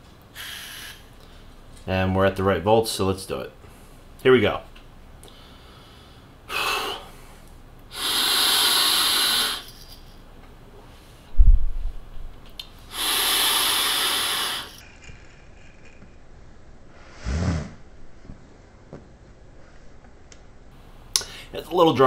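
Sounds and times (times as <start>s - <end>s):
loud hissing breaths: 0.3s - 1.5s, 5.2s - 10.0s, 12.8s - 14.9s
low thump: 11.4s - 12.0s
short throaty sound: 17.0s - 17.9s.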